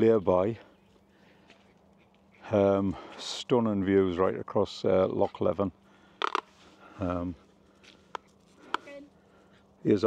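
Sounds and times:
faint background hiss and hum: 0:00.0 - 0:10.0.

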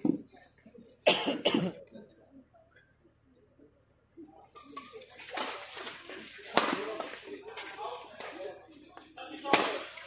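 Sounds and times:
person coughing: 0:01.1 - 0:01.8.

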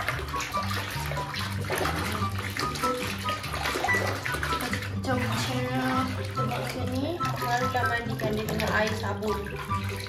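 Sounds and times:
background music: 0:00.0 - 0:10.0
water sloshing in plastic basin: 0:00.0 - 0:10.0.

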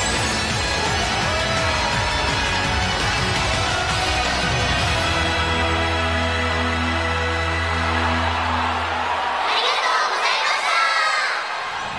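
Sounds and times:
crowd cheering and screaming: 0:00.0 - 0:11.9.

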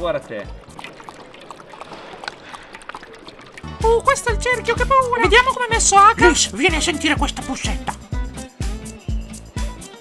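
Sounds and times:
dog lapping water: 0:00.0 - 0:06.4.

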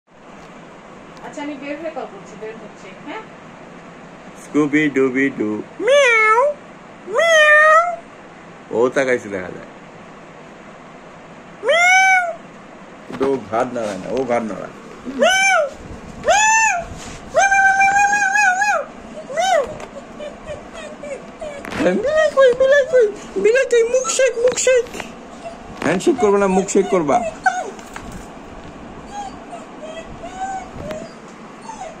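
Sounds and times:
puppy whimpering: 0:05.8 - 0:08.0, 0:11.6 - 0:12.4, 0:15.0 - 0:28.3, 0:29.0 - 0:32.0.

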